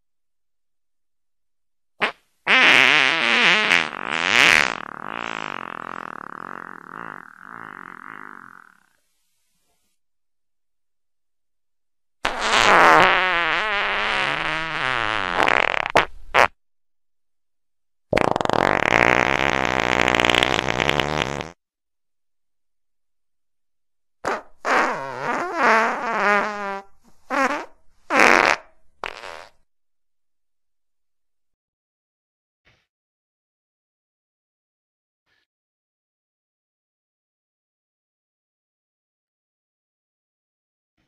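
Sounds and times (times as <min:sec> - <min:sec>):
farts: 0:02.0 - 0:09.0, 0:12.2 - 0:16.6, 0:18.1 - 0:21.6, 0:24.2 - 0:29.7.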